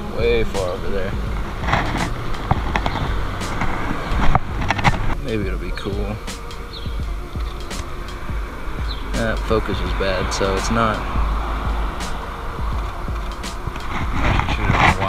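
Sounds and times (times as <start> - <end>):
traffic rumble: 0.0 - 15.0
wind on microphone: 0.0 - 15.0.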